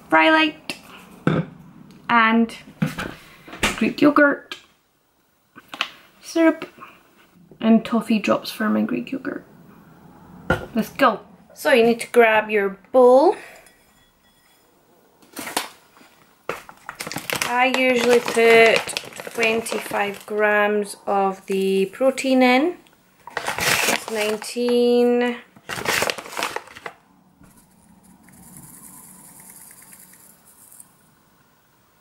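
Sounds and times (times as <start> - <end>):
plastic pouch rustling: 16.5 - 20.5, 23.2 - 27.7
powder pouring into bowl: 28.1 - 31.0.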